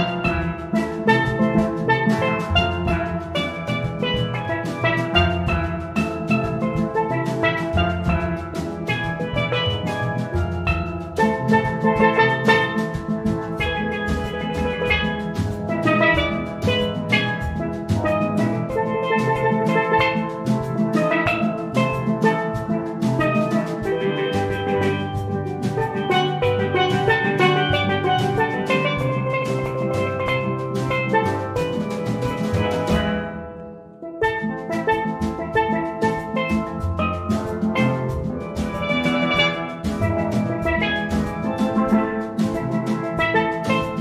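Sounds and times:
drum kit beat: 0.0 - 44.0
steelpans playing melody: 0.0 - 44.0.

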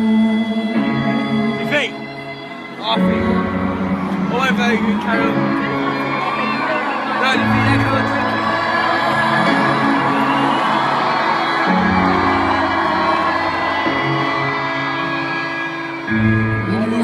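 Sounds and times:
live ballad music: 0.0 - 17.0
crowd cheering and whooping: 3.4 - 17.0.

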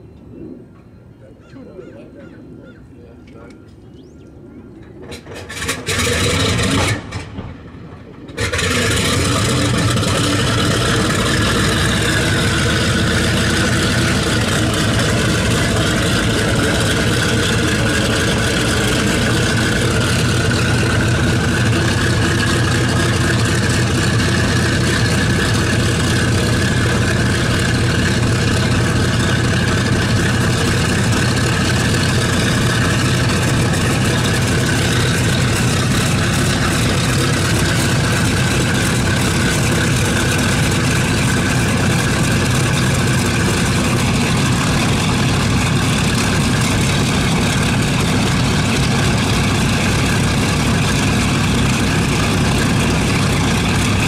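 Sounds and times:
radial aircraft engine starting and idling: 0.0 - 54.0.

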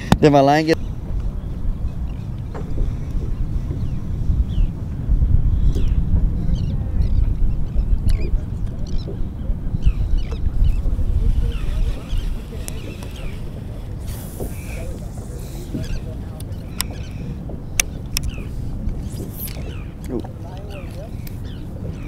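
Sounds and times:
wind rumble on microphone: 0.0 - 22.0
high bird calls: 9.8 - 20.1.

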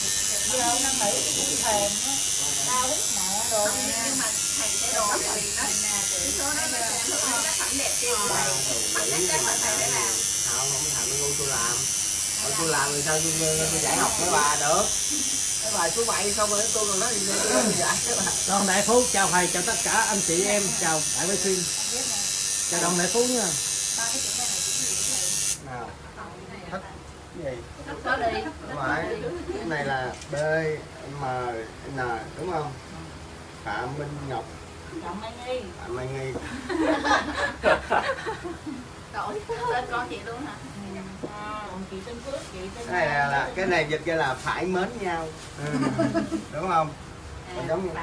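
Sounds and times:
tattoo machine buzzing: 0.0 - 25.8
women talking: 0.2 - 10.4, 13.7 - 18.5, 23.9 - 25.4, 27.9 - 29.7, 39.1 - 42.8.

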